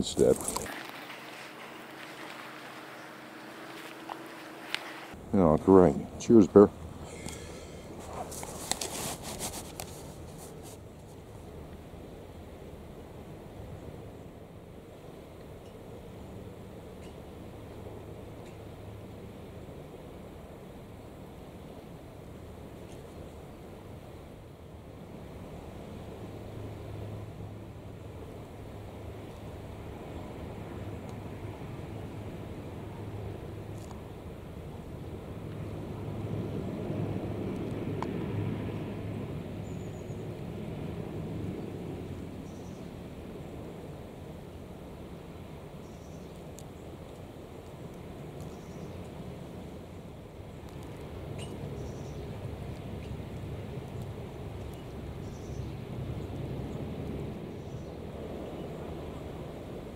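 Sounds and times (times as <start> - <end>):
distant boat diesel engines droning: 0.0 - 8.0.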